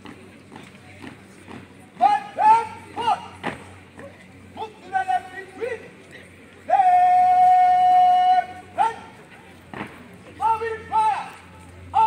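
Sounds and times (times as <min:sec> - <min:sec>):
boots marching on concrete: 0:00.0 - 0:04.3, 0:09.6 - 0:10.4.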